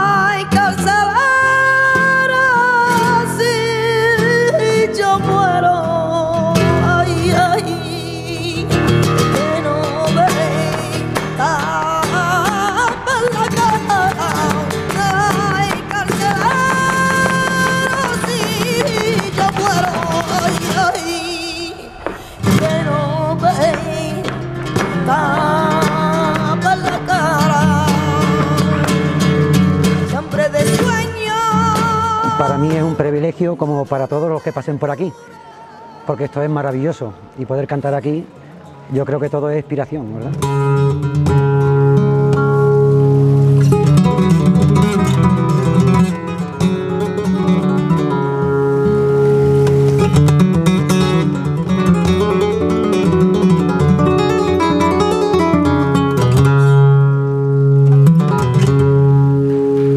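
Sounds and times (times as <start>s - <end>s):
person singing flamenco: 0.0s - 37.7s, 39.0s - 59.9s
flamenco guitar: 0.0s - 59.9s
dancer's feet tapping: 10.4s - 21.2s, 23.5s - 30.1s
hand claps: 12.8s - 21.0s.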